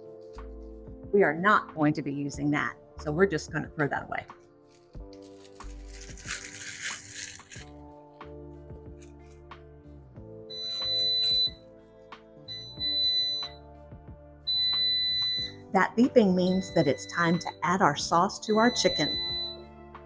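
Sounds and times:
plastic wrapper crinkling: 4.6s - 7.9s
air fryer alert beeping: 10.5s - 11.6s, 12.5s - 13.6s, 14.5s - 15.5s, 16.2s - 19.6s.

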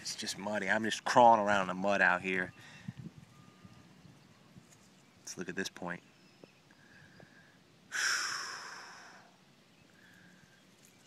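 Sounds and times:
man sighing: 7.9s - 9.4s.

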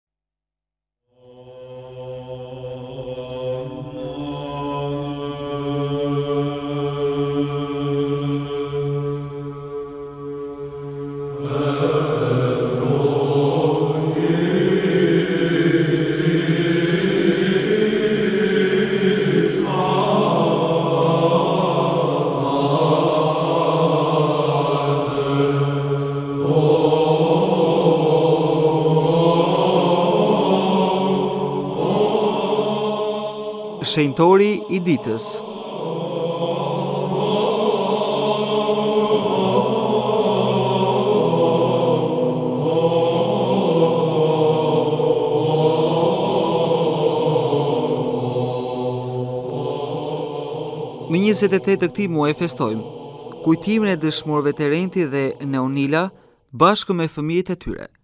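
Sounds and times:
choir chanting over a drone: 1.1s - 56.2s.

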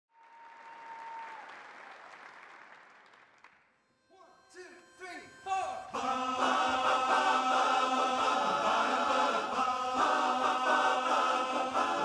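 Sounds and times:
audience applause: 0.1s - 3.6s
steady high tone: 3.9s - 12.0s.

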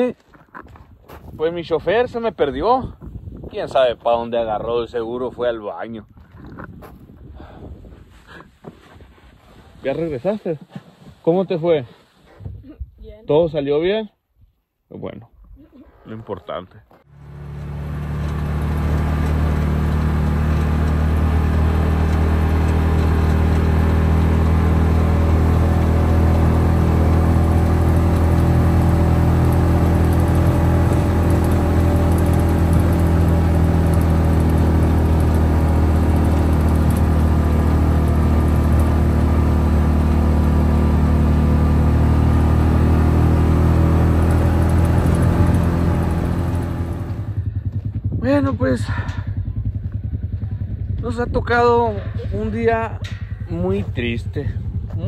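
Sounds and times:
vehicle engine droning: 17.0s - 55.0s.

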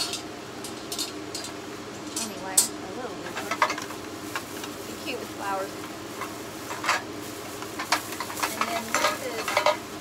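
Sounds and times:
plastic bag crinkling: 3.4s - 9.8s.

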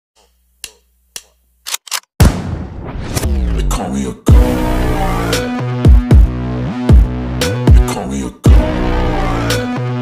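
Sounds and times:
sharp clicks: 0.6s - 2.1s.

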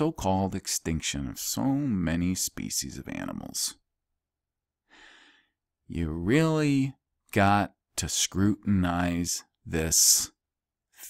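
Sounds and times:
man speaking: 0.0s - 3.8s, 5.9s - 10.4s
man breathing in: 4.8s - 5.7s.

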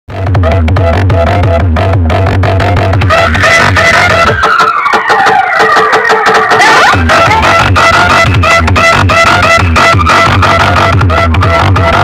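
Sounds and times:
heavy bass beat: 0.1s - 12.0s
loud dance music over loudspeakers: 0.1s - 12.0s.

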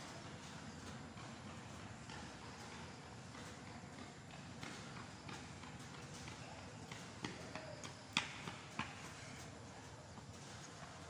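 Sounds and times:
footsteps jogging on concrete: 0.0s - 11.0s.

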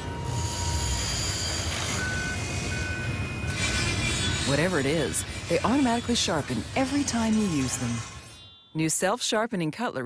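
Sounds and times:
industrial machinery rumbling: 0.0s - 8.4s
repeating warning beeps: 0.0s - 8.8s.

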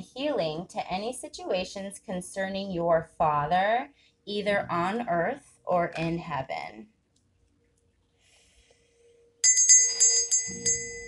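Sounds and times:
hand bell ringing: 9.4s - 11.0s.

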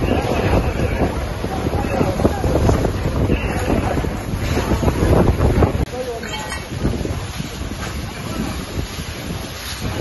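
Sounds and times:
fire hose water rushing: 0.0s - 10.0s
wind buffeting microphone: 0.0s - 10.0s.

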